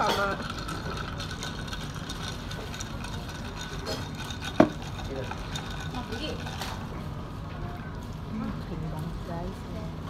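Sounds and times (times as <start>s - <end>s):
restaurant room hum: 0.0s - 10.0s.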